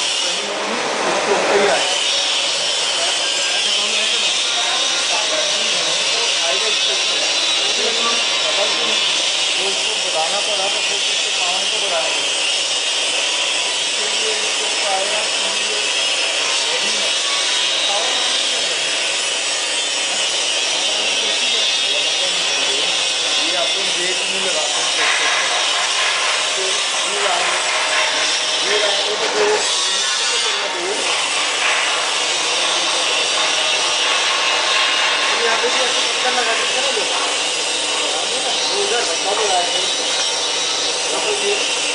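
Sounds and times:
vacuum pump hissing rush: 0.0 - 41.9.

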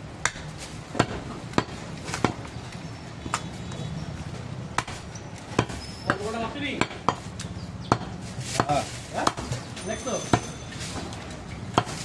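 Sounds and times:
cleaver chopping on wooden block: 4.8 - 6.2, 6.8 - 9.6, 11.7 - 12.0.

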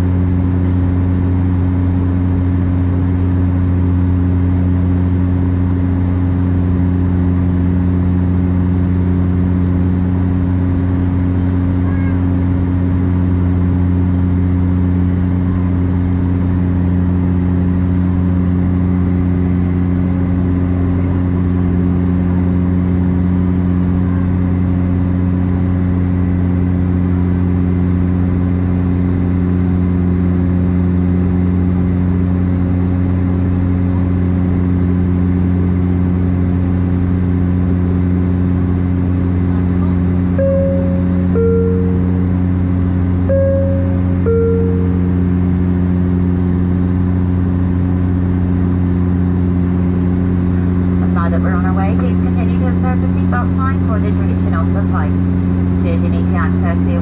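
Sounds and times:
turboprop cabin drone: 0.0 - 57.0
two-tone cabin chime: 40.3 - 45.8.

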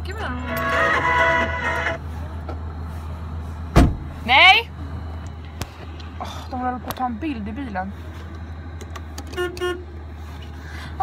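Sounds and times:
low engine hum: 0.0 - 11.0
car horn toot: 0.4 - 2.0, 9.3 - 9.9.

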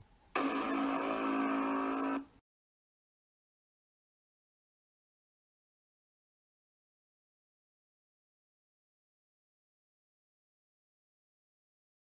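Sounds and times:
held tone with overtones: 0.4 - 2.3.

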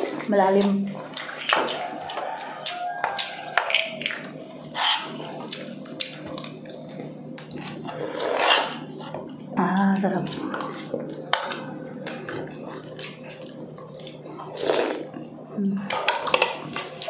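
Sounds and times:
chewing and slurping: 0.0 - 15.3.

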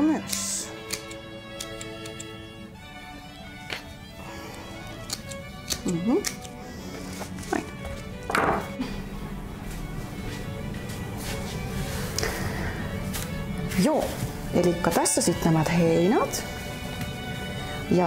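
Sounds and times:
scissors snipping stems: 0.0 - 2.4, 4.6 - 7.7
light background music: 0.0 - 18.0.

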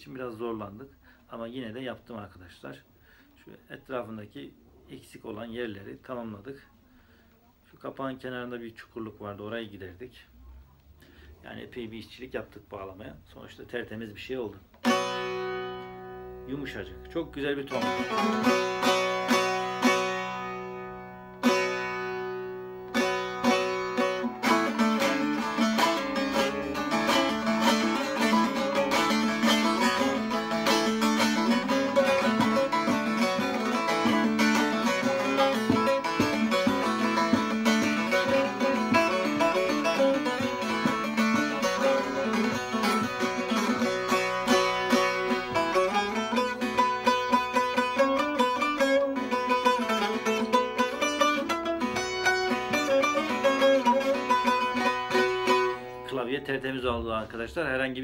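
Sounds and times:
long-necked lute rapid plucking: 14.8 - 56.1.

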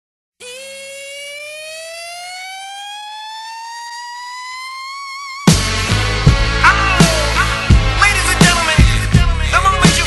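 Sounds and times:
siren-like rising tone: 0.4 - 7.4.

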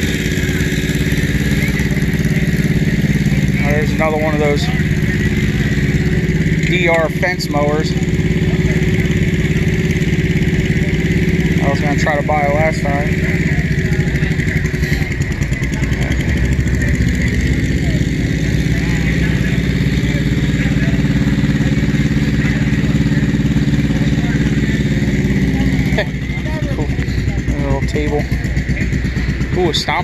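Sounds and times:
engine running: 0.0 - 30.0
faint voices: 0.0 - 30.0.

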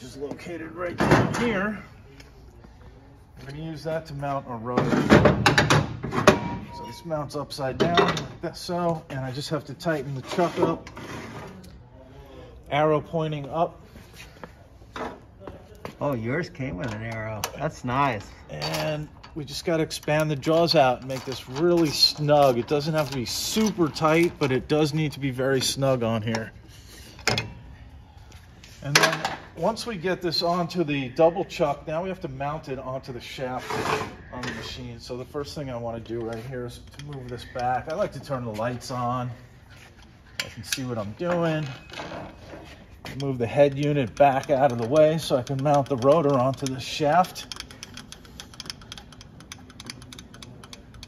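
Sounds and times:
workshop background noise: 0.0 - 51.0
rapid light clicks of feed mechanism: 43.2 - 51.0.

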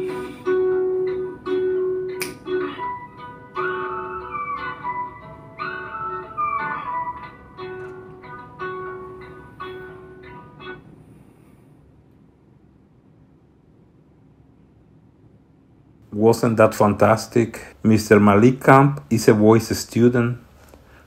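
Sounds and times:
guitar plucking ringing notes: 0.0 - 11.2.

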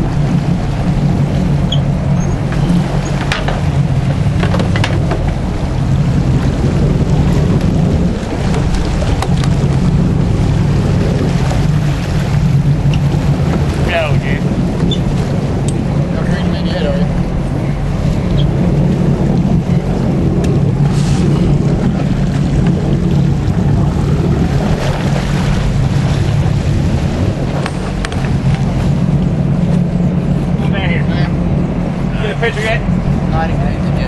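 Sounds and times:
boat engine droning: 0.0 - 34.0
water noise: 0.0 - 34.0
wind: 0.0 - 34.0.

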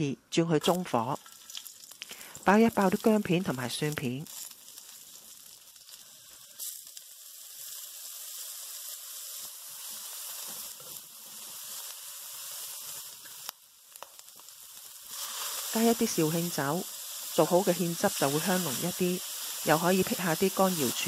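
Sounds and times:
food sizzling in hot oil: 0.6 - 21.0.

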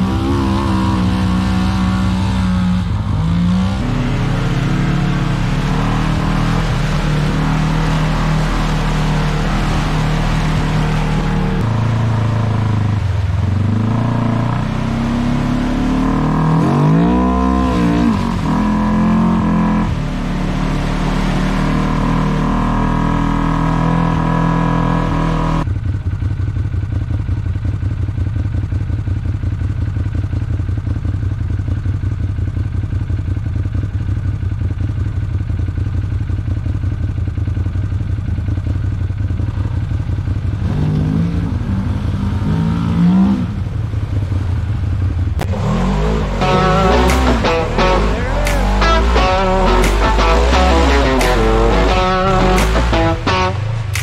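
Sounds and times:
low engine drone: 0.0 - 25.6, 43.6 - 54.0
utility vehicle engines revving: 0.0 - 25.6, 39.5 - 54.0.

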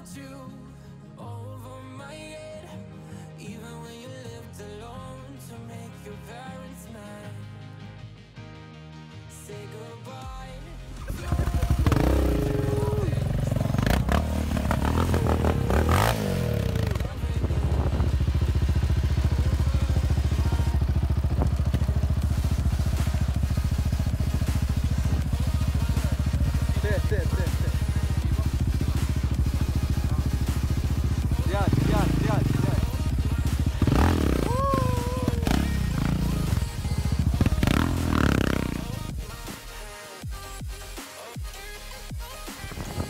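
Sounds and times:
quad engine revving and idling: 11.0 - 41.0, 41.6 - 43.0.

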